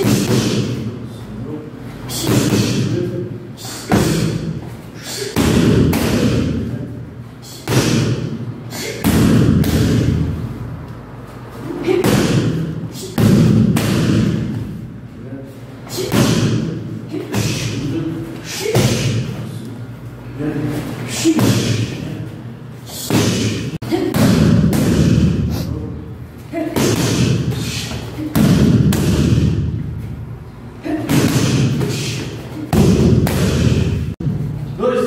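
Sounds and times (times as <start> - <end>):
person exhaling sharply: 3.6 - 5.4, 7.4 - 9.1.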